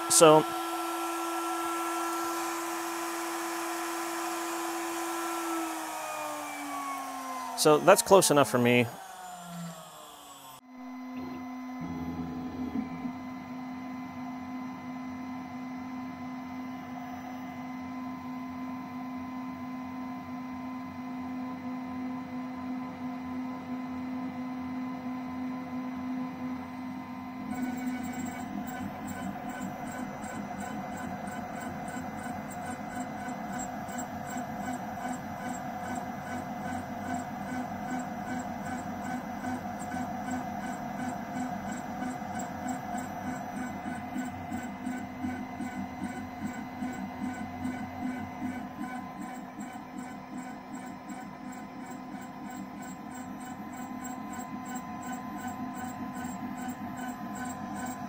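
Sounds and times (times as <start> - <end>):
cutter pulsing on metal plate: 0.0 - 15.1, 26.7 - 58.0
milling spindle humming: 0.0 - 20.2, 26.0 - 58.0.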